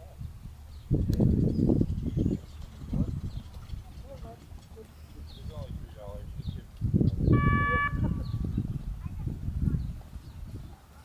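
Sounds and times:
short buzzer tone: 0:07.4 - 0:08.3.

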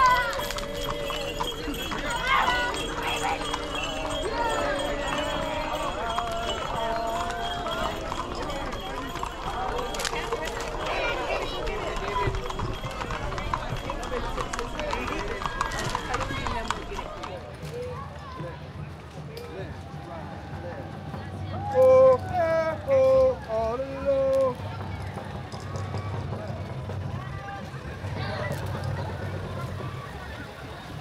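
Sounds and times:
horse hooves on asphalt: 0:00.0 - 0:21.6
people chattering: 0:00.0 - 0:31.0.

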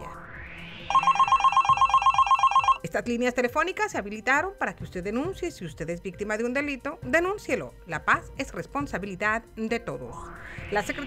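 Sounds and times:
telephone ringing: 0:00.9 - 0:02.9.

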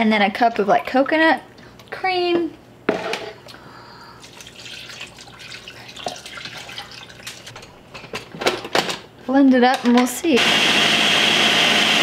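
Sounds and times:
broth trickling into blender: 0:04.1 - 0:07.6.

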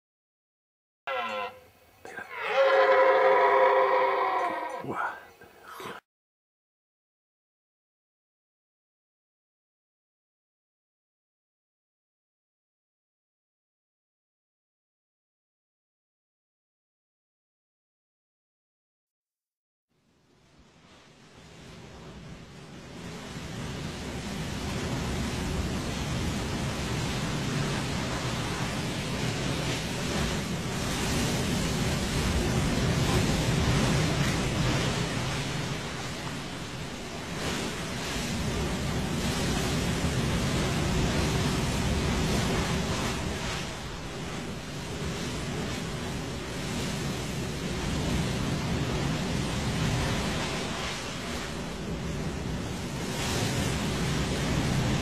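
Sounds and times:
deer stag roaring: 0:01.1 - 0:05.2
ocean surf breaking on beach: 0:20.5 - 0:55.0.

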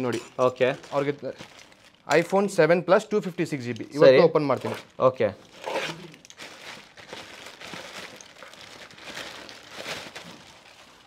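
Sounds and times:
plastic mailer bag rustling: 0:00.5 - 0:02.6, 0:04.5 - 0:11.0.

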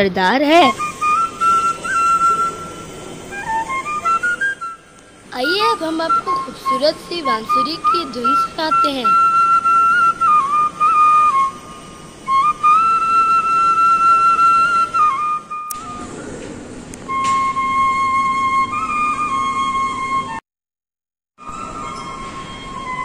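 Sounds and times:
bamboo flute melody: 0:00.5 - 0:20.4, 0:21.4 - 0:23.0.

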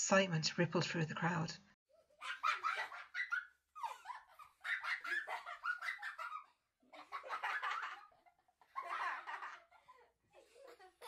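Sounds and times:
children laughing and giggling: 0:01.9 - 0:11.0.

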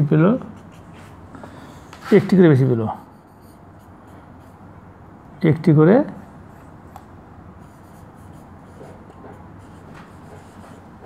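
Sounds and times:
marker scratching on whiteboard: 0:00.5 - 0:01.2, 0:02.0 - 0:04.8, 0:06.2 - 0:11.0.

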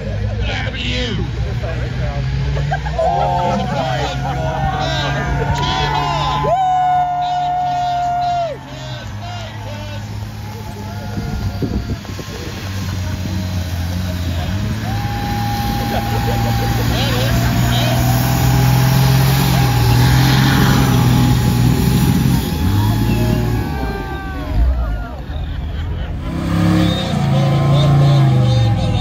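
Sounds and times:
diesel engine under heavy load: 0:00.0 - 0:29.0.

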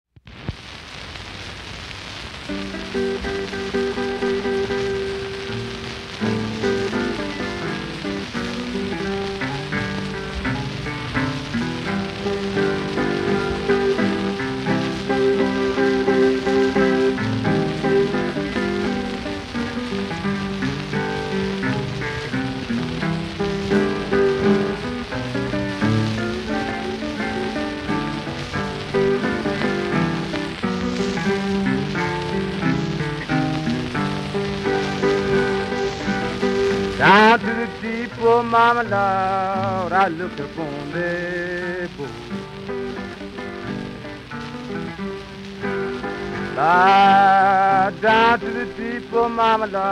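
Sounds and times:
record surface crackle and hiss: 0:00.1 - 0:49.9
acoustic blues guitar: 0:01.1 - 0:49.9.

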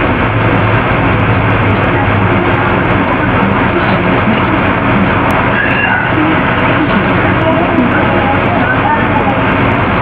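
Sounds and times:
loud rushing noise: 0:00.0 - 0:10.0
low hum: 0:00.0 - 0:10.0.

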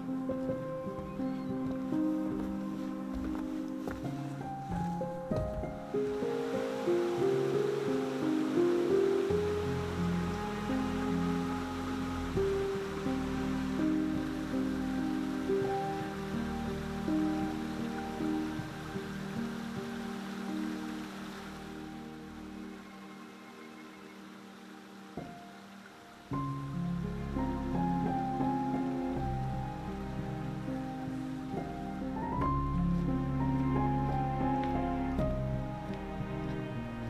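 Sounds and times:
mountain stream rushing: 0:00.0 - 0:37.0
slow melody of held notes: 0:00.0 - 0:37.0.

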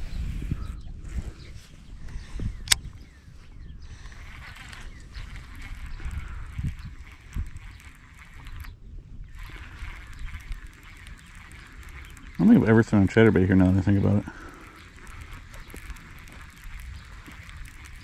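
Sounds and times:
wind rumbling on microphone: 0:00.0 - 0:18.0
fishing reel whirring: 0:02.3 - 0:18.0
sharp click: 0:02.6 - 0:02.9.

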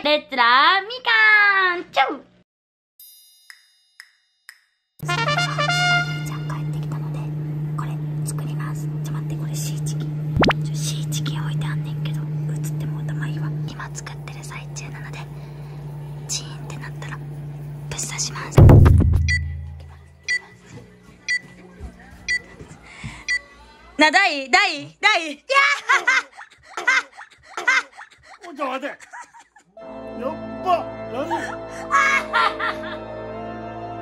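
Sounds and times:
steady low hum: 0:05.0 - 0:23.0
woman whispering: 0:06.3 - 0:10.1, 0:10.7 - 0:15.4, 0:16.3 - 0:17.2, 0:17.9 - 0:18.6
deep boom: 0:18.6 - 0:20.2
high electronic beeps: 0:18.8 - 0:20.4.

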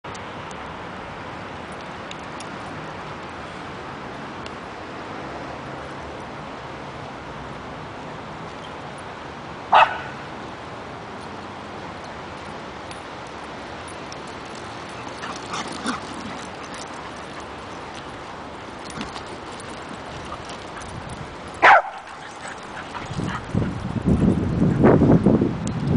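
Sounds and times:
dog barking: 0:09.7 - 0:10.2, 0:21.6 - 0:22.1
dog yelping: 0:21.6 - 0:23.4.

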